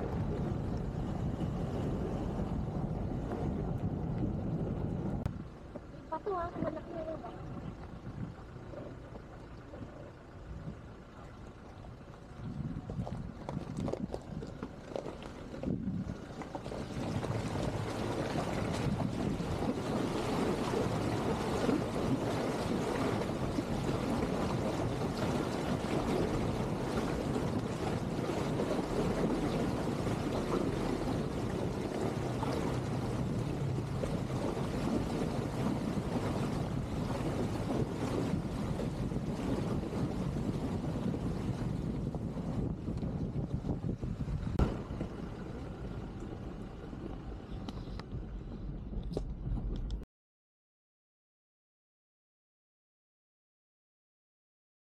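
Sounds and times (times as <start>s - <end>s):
water splashing around tyres: 0.0s - 49.2s
car engine running: 44.3s - 50.0s.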